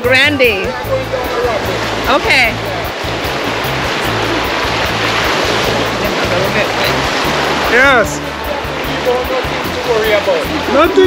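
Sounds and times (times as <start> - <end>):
background music: 0.0 - 11.0
river water rushing: 0.0 - 11.0.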